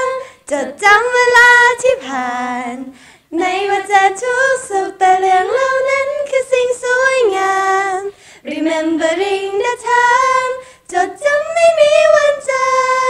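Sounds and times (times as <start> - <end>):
women singing a cappella: 0.0 - 13.0.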